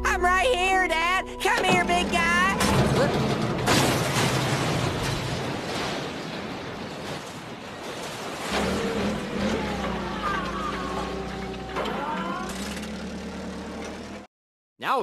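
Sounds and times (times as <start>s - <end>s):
cartoon forklift engine humming: 0.0s - 5.4s, 8.4s - 14.3s
noisy clatter: 1.6s - 14.3s.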